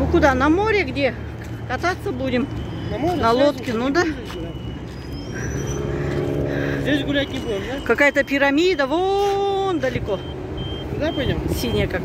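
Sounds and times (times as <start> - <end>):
vehicle engine passing: 0.0 - 12.0.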